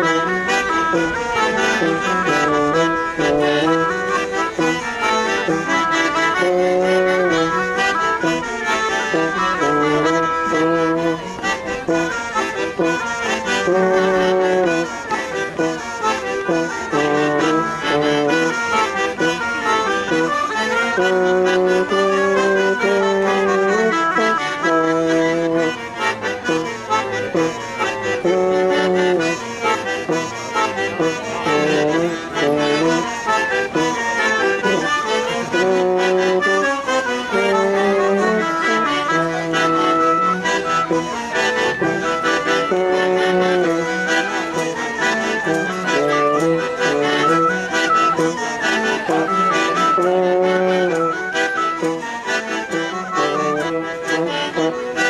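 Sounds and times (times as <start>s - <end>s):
accordion folk dance tune: 0.0s - 55.0s
brass instrument playing: 0.0s - 55.0s.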